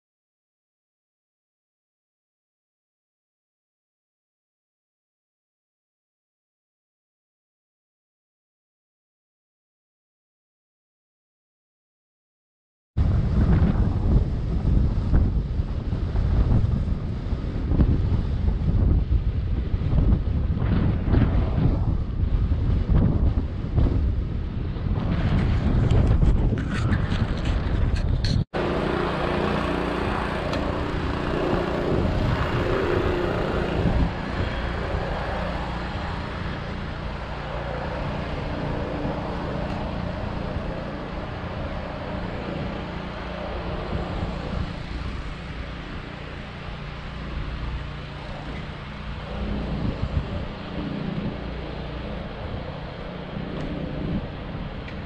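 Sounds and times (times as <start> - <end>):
road rumble: 13.0 - 55.0
wind buffeting microphone: 13.0 - 55.0.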